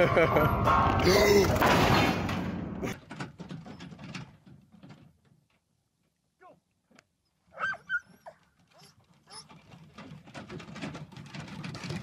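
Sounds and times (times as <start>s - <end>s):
dog yelping and whining: 7.5s - 9.6s.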